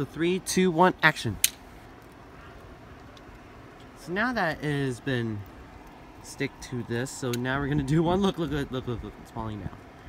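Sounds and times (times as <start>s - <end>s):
steady low hiss: 0.0s - 10.0s.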